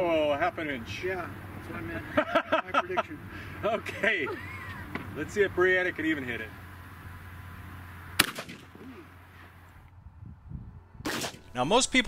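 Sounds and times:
shotgun shot with echo: 0:08.2 - 0:08.8, 0:11.0 - 0:11.5.

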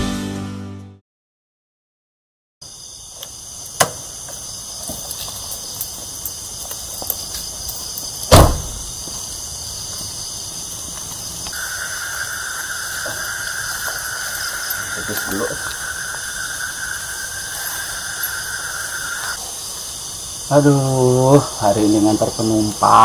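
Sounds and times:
night insects chirring: 0:02.6 - 0:23.0
van side door shut: 0:08.3 - 0:08.9.

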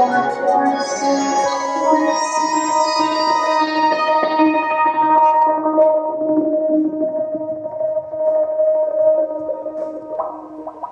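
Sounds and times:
synthesizer sustained notes: 0:00.0 - 0:10.9.

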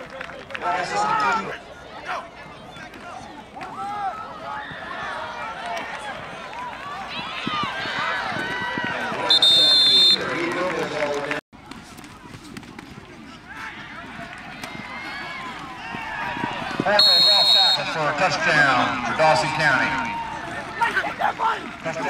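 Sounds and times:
crowd shouting and calling: 0:00.0 - 0:11.4, 0:13.0 - 0:22.0
referee's whistle blowing: 0:09.2 - 0:10.4, 0:16.9 - 0:18.0.

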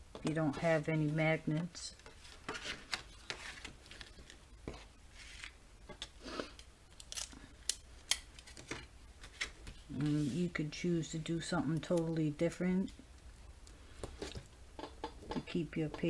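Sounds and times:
paper rustling: 0:01.6 - 0:05.6.

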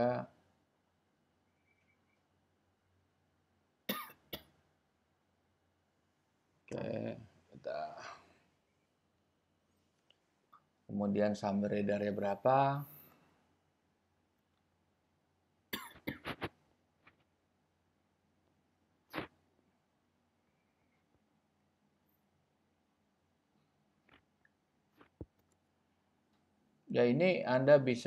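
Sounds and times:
man coughing: 0:03.9 - 0:04.2.

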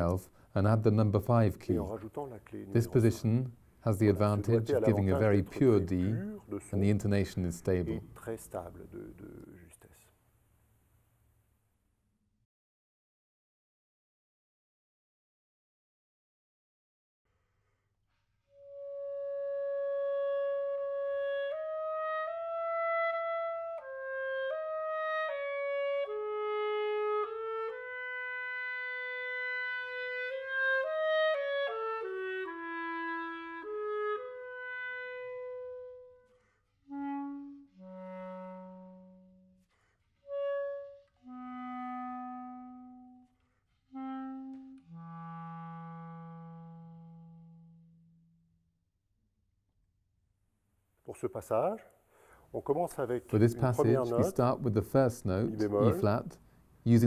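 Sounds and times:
solo clarinet playing: 0:18.5 - 0:48.5.

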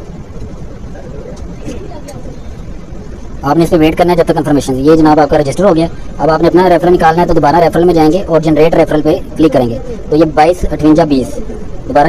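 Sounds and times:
faint voices: 0:00.0 - 0:12.0
low background rumble: 0:00.0 - 0:12.0.

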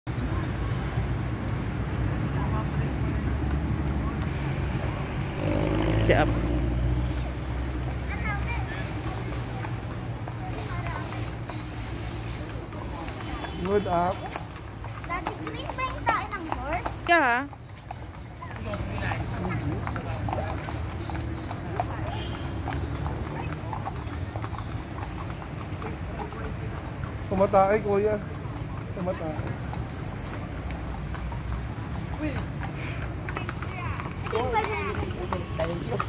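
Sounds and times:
pony hooves clopping on pavement: 0:02.5 - 0:36.0
children calling and chattering: 0:03.5 - 0:05.9, 0:06.6 - 0:27.0, 0:28.5 - 0:36.0.

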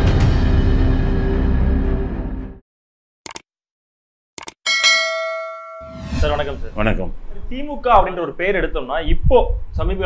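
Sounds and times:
bright bell chime: 0:04.7 - 0:06.1.

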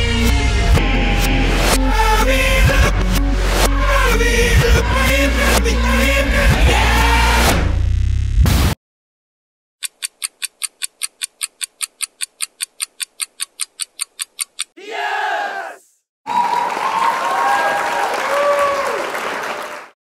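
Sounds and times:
clock ticking fast: 0:09.8 - 0:14.8
crowd cheering: 0:14.8 - 0:20.0.

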